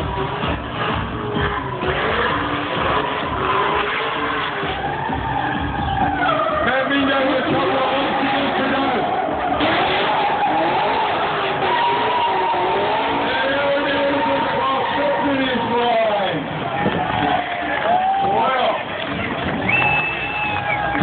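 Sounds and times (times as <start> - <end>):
engine revving: 0.0 - 17.5
tyres skidding: 0.0 - 21.0.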